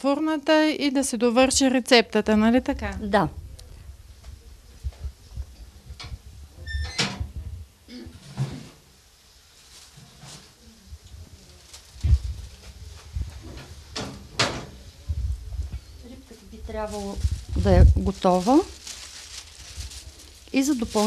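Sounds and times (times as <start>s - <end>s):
oven door opening: 6.0s - 7.3s.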